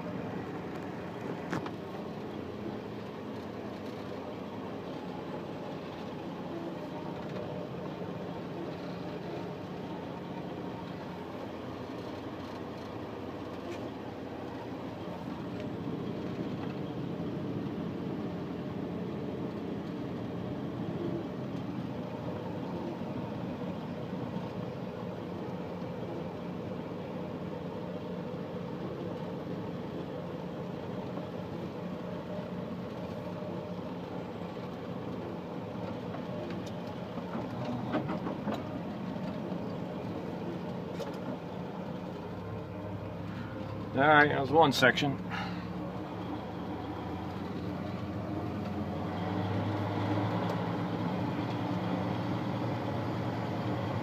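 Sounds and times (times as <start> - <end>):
engine hum: 0.0 - 54.0
road noise: 0.0 - 54.0.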